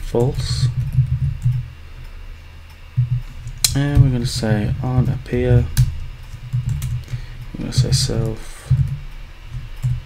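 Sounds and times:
low hum: 0.0 - 10.0
keyboard keys clicking: 0.2 - 1.6, 5.0 - 10.0.

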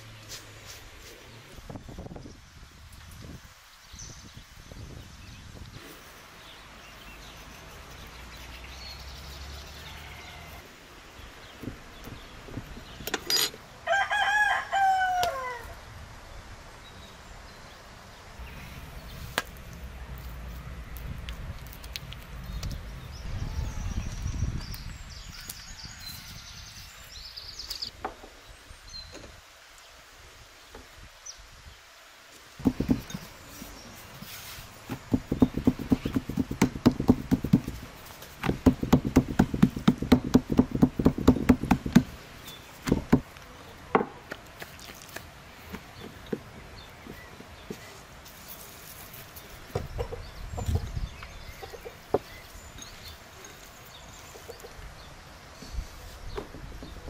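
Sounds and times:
rooster crowing: 13.8 - 15.8.

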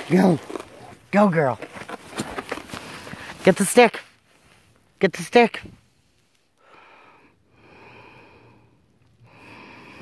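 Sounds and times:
slow faint breaths: 6.2 - 10.0.

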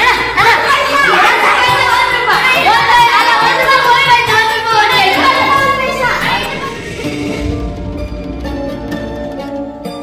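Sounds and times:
boys shouting and singing: 0.0 - 6.7
music: 0.0 - 10.0.

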